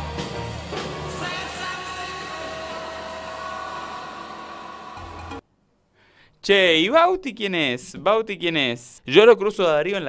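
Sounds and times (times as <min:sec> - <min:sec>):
party music: 0:00.0 - 0:05.4.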